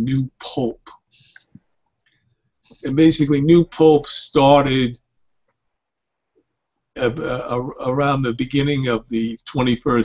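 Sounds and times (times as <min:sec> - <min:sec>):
man speaking: 0:00.0 - 0:01.5, 0:02.7 - 0:05.1, 0:07.0 - 0:10.0.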